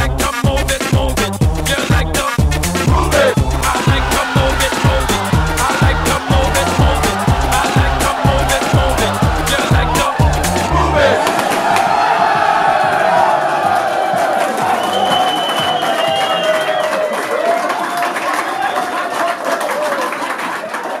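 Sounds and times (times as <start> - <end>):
crowd of men cheering: 2.8 - 21.0.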